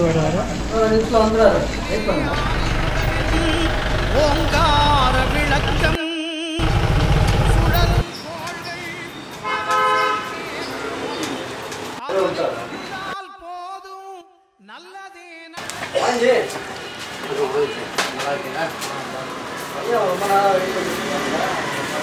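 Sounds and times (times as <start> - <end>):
traffic rumble: 0.0 - 6.0, 6.6 - 13.2, 15.6 - 22.0
vehicle horn: 2.9 - 5.0, 9.4 - 10.9.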